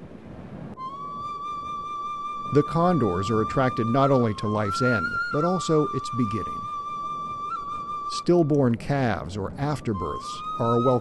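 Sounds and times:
long flute note: 0.8 - 8.2.

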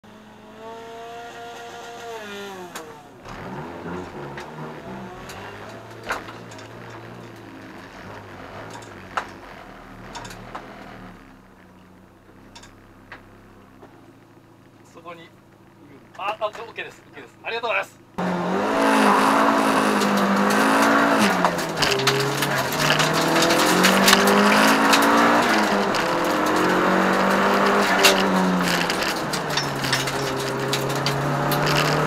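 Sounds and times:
car engine: 0.0 - 32.0
sharp clicks and knocks: 2.7 - 14.4, 19.8 - 32.0.

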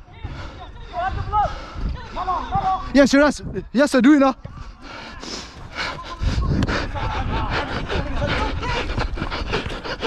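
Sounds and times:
footballers shouting: 0.0 - 10.0.

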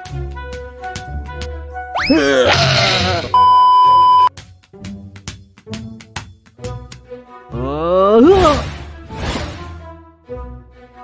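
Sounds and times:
background music with light beat: 0.0 - 2.0, 4.3 - 7.7
high electronic beep: 3.3 - 4.3
cartoon swish effect: 8.2 - 9.6.

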